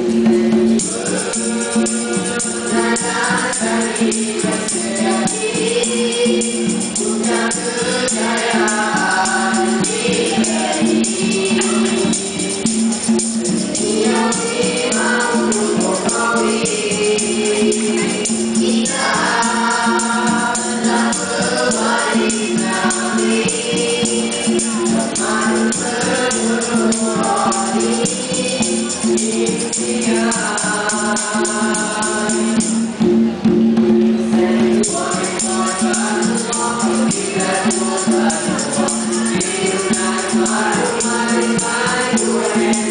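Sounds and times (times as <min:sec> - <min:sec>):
boys singing in harmony: 0:00.0 - 0:42.9
hand drums beat: 0:00.0 - 0:42.9
jingling percussion: 0:00.0 - 0:42.9.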